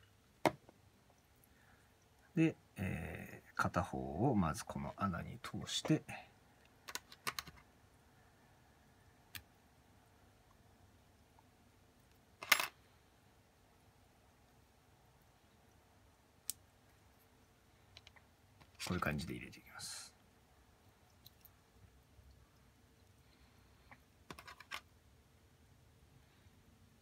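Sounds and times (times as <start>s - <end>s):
metal tool clattering on a table: 12.4s - 12.8s
small sharp clicks and taps: 17.9s - 18.8s.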